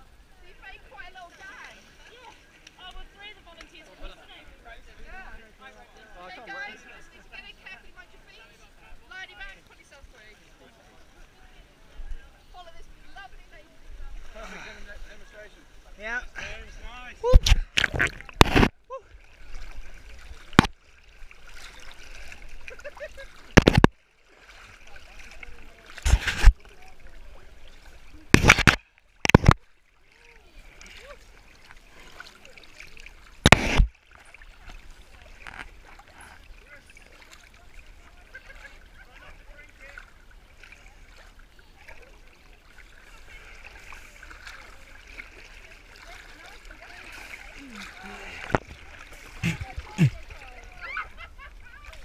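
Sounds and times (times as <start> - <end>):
water sloshing and bubbling: 12.9 - 52.0
sharp loud water splashes: 17.2 - 18.8, 19.5 - 26.9, 28.2 - 29.7, 30.9 - 35.2.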